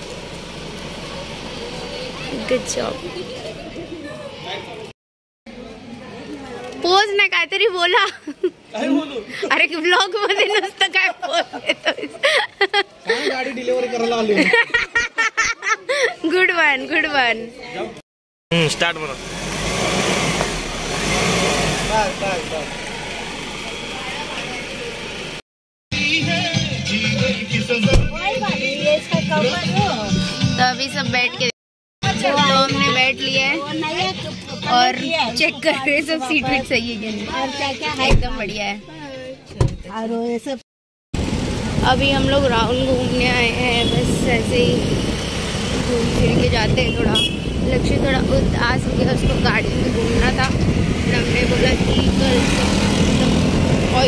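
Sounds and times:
vehicle engine idling: 0:00.0 - 0:04.1, 0:21.7 - 0:25.4, 0:41.2 - 0:47.3
voices: 0:21.9 - 0:25.3, 0:26.1 - 0:40.6, 0:45.7 - 0:54.0.

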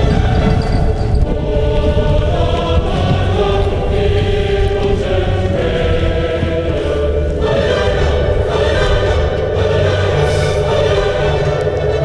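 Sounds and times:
choir singing long-held chords: 0:00.0 - 0:12.0.

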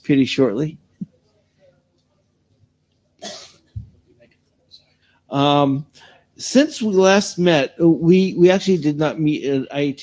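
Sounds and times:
person coughing: 0:03.2 - 0:03.7.

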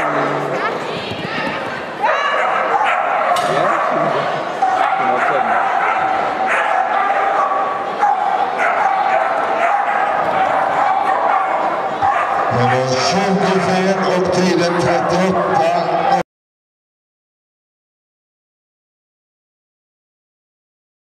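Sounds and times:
people's voices: 0:00.0 - 0:16.2
dog barking and yipping: 0:02.1 - 0:12.8.

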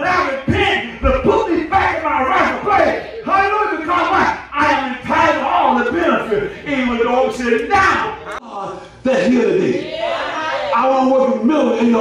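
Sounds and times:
man preaching loudly: 0:00.0 - 0:09.8, 0:10.7 - 0:12.0.

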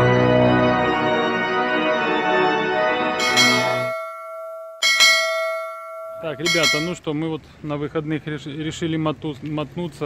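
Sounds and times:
organ music: 0:00.0 - 0:07.0
struck bell tones: 0:03.2 - 0:07.0.

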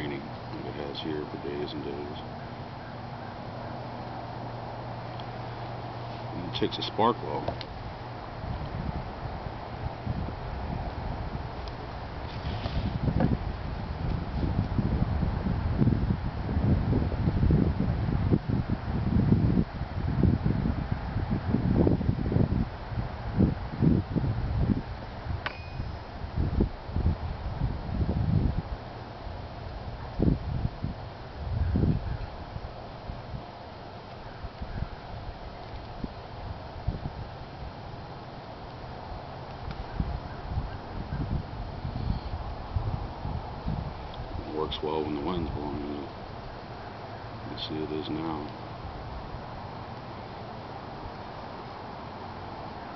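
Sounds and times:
wind buffeting microphone: 0:04.9 - 0:52.7.

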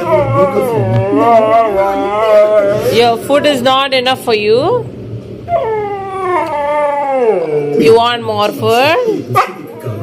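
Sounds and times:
dog howling: 0:00.0 - 0:03.0, 0:05.4 - 0:08.0.

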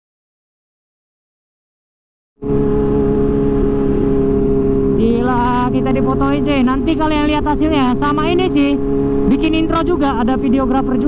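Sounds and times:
motorcycle engine running: 0:02.4 - 0:11.0.

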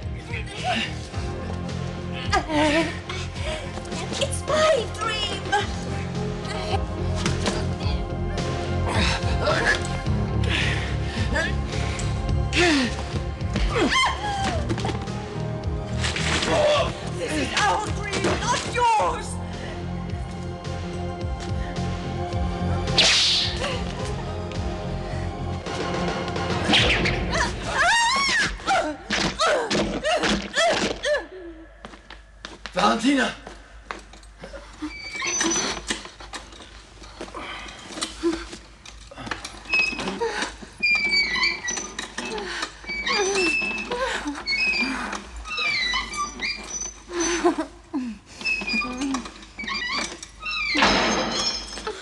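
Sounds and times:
background music: 0:00.0 - 0:33.4
sharp hissing swish: 0:23.0 - 0:23.6.

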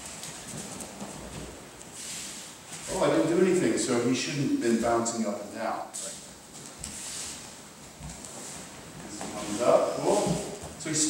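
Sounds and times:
rustling of uniforms: 0:00.0 - 0:03.7, 0:06.0 - 0:11.0.

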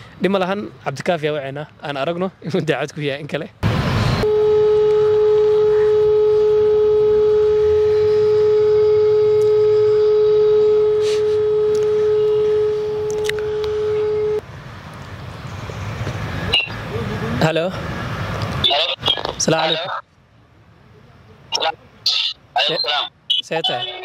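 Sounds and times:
phone call tone: 0:04.2 - 0:14.4.

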